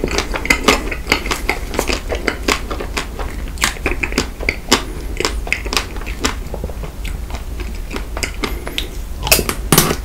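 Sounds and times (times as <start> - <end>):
chewing ice cream bar: 0.0 - 9.6
wet mouth sounds: 0.0 - 10.0.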